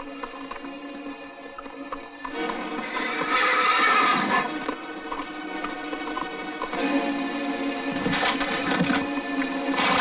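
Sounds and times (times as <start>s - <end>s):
background music: 0.0s - 10.0s
horse neighing loudly: 2.8s - 4.5s.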